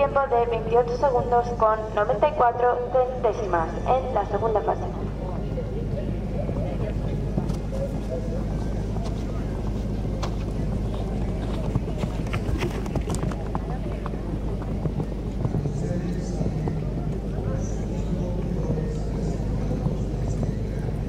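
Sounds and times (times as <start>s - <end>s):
faint voices: 0.0s - 21.0s
steady low hum: 0.0s - 21.0s.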